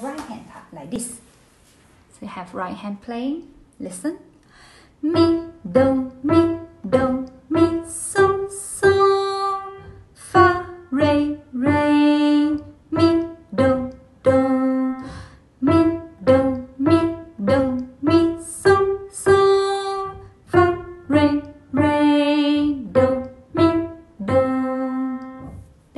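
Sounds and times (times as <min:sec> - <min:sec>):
person singing note names: 0:05.0 - 0:25.6
simple piano melody: 0:05.0 - 0:25.7.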